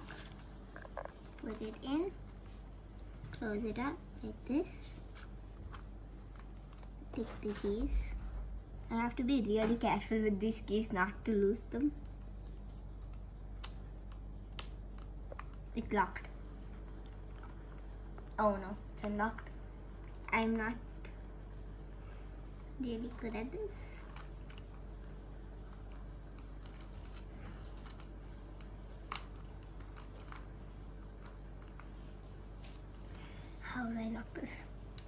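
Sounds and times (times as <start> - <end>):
small lock and keys clicking: 25.7 - 31.9.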